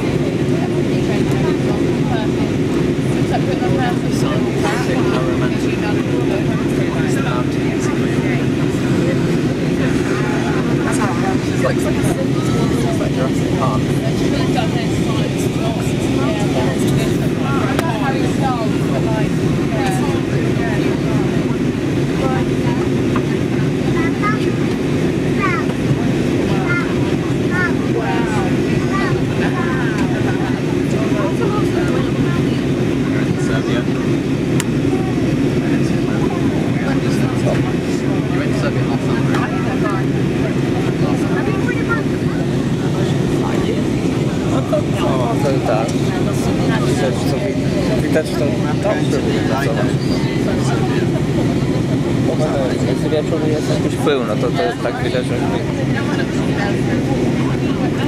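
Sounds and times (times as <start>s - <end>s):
airliner cabin roar: 0.0s - 58.0s
passengers talking indistinctly: 0.0s - 58.0s.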